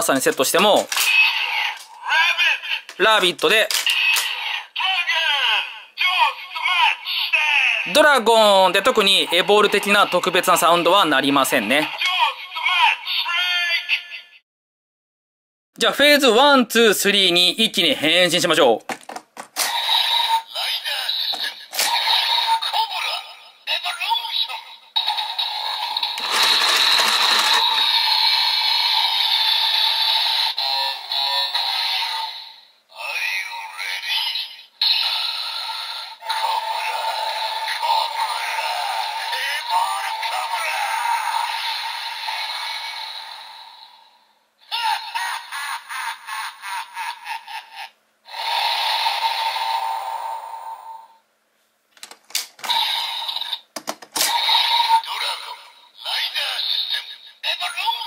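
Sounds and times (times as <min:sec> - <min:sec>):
toy electronic voice calls and music: 0:00.0 - 0:08.0, 0:08.8 - 0:14.4, 0:19.6 - 0:43.4, 0:52.6 - 0:58.0
plastic clicks: 0:51.9 - 0:52.7, 0:53.7 - 0:54.3.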